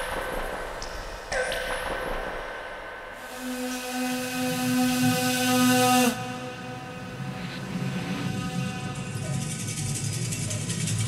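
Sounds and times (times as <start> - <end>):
loud held drone tone: 3.2 - 10.7
grainy textured layer: 6.6 - 11.0.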